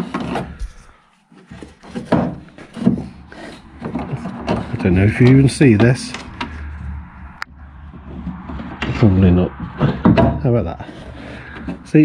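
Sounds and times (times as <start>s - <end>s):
handling noise inside door: 0.0s - 7.0s.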